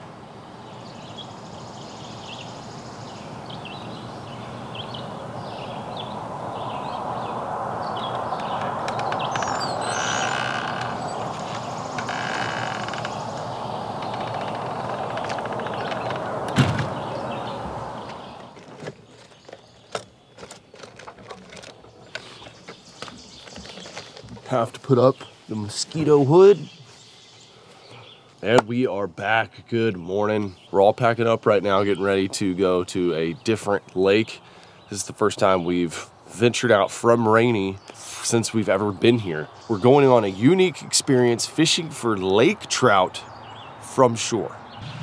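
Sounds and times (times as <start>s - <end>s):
small bird chirps: 0.7s - 16.2s
steady rushing noise: 4.5s - 9.9s, 44.8s - 45.0s
faint clicks and rustling: 18.0s - 24.6s
sharp knock: 44.8s - 45.0s.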